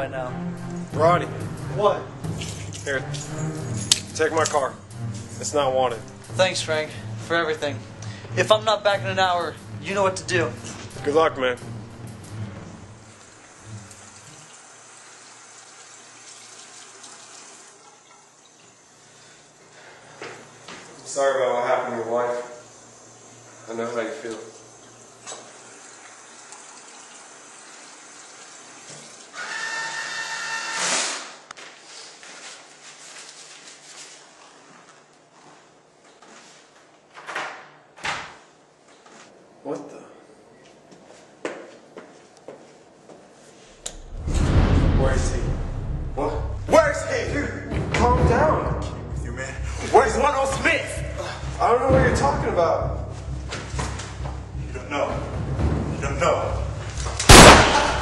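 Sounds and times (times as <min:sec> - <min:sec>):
keys clinking: 0:02.4 - 0:04.6
water running from tap: 0:13.1 - 0:19.4, 0:22.7 - 0:29.8
rushing whine: 0:43.8 - 0:47.4.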